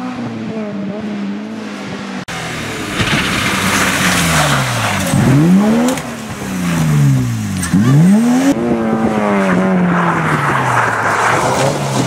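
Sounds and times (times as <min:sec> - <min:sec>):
race car engine revving: 0:00.0 - 0:12.0.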